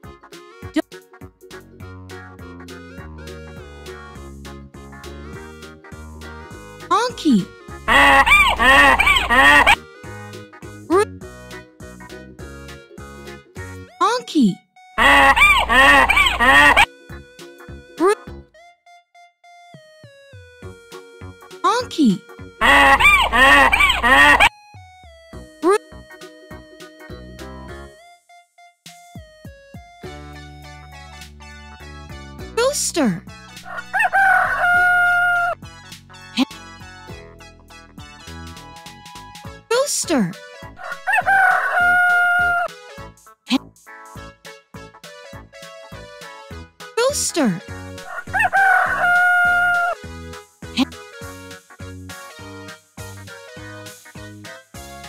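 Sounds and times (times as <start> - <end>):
donkey braying: 7.9 - 9.8, 15.0 - 16.9, 22.6 - 24.5, 33.6 - 35.6, 40.8 - 42.7, 47.0 - 50.0
rooster crowing: 7.9 - 9.8, 15.0 - 16.9, 22.6 - 24.5, 33.7 - 35.6, 40.8 - 42.7, 48.0 - 50.0.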